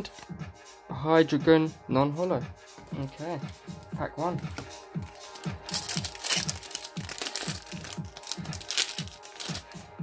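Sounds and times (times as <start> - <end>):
background music with bass line: 0.0 - 10.0
foil wrapper crinkling and tearing: 5.6 - 9.8.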